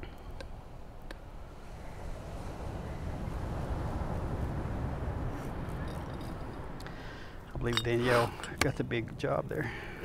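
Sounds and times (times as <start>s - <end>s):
ocean surf rumble: 0.0s - 10.0s.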